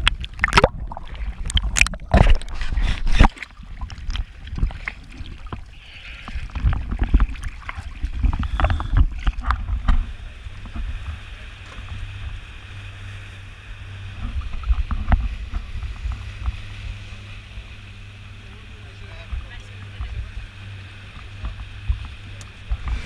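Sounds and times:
outboard engine humming: 0.0 - 23.0.

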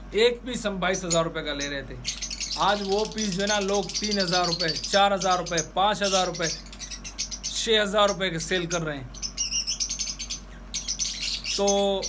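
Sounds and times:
lovebirds chirping: 0.0 - 12.0.

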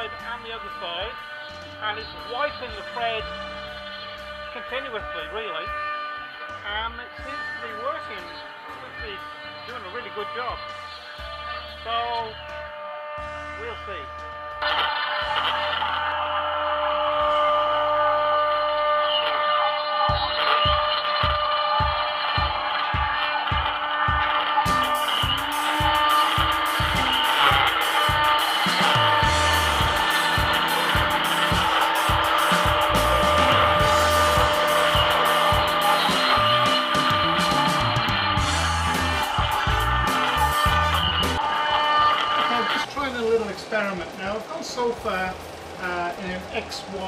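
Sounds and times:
background music with steady beat: 0.0 - 47.0
router spindle cutting wood: 0.0 - 47.0
shop vacuum hissing: 0.0 - 47.0.

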